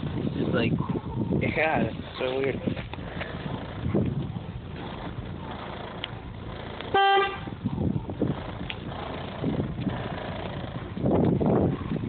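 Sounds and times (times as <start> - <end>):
low rumble and thumps: 0.0 - 12.0
vehicle horn toot: 6.9 - 7.6.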